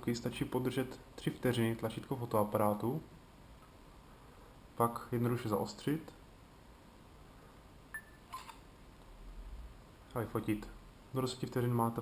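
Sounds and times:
brief phone tone: 7.9s - 8.4s
faint low rumble: 8.7s - 12.0s.

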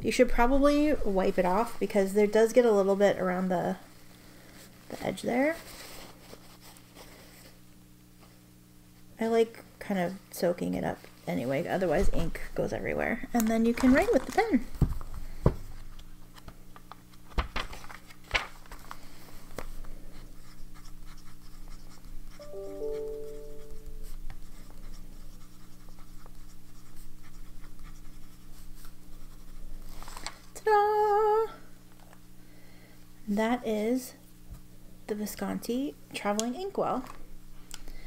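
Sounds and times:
pen nib scratching on paper: 20.3s - 22.4s, 23.5s - 29.6s.

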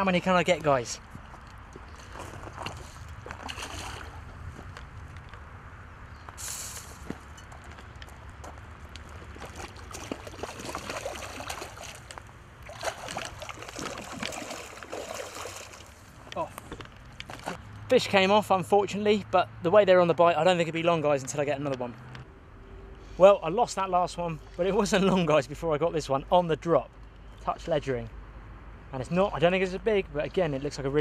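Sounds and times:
fish splashing in water: 3.2s - 4.4s, 9.2s - 16.2s.

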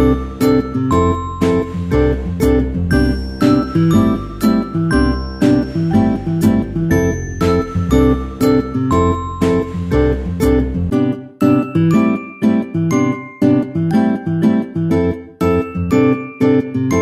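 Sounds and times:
plucked guitar notes: 0.0s - 17.0s.

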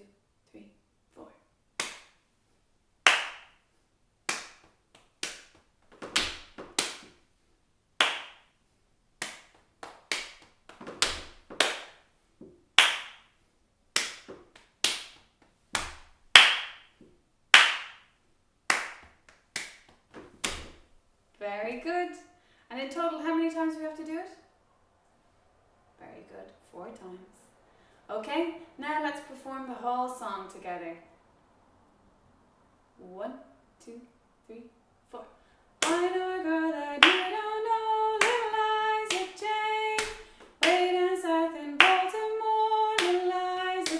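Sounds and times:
hand claps: 1.8s - 2.2s, 3.1s - 3.6s, 4.3s - 7.2s, 8.0s - 8.5s, 9.2s - 12.0s, 12.8s - 13.3s, 14.0s - 16.9s, 17.5s - 18.1s, 18.7s - 20.8s, 35.8s - 36.1s, 37.0s - 37.4s, 38.2s - 38.5s, 39.1s - 40.9s, 41.8s - 42.2s, 43.0s - 43.9s
knee slaps: 4.3s - 7.2s, 8.0s - 8.4s, 9.2s - 13.2s, 14.0s - 18.0s, 18.7s - 20.9s.

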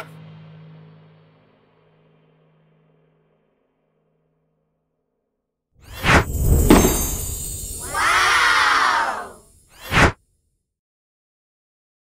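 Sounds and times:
short whoosh: 5.8s - 10.2s
children cheering: 7.8s - 9.4s.

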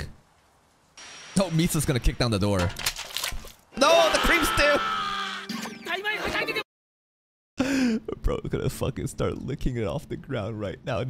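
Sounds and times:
voice crying out: 3.8s - 5.5s.

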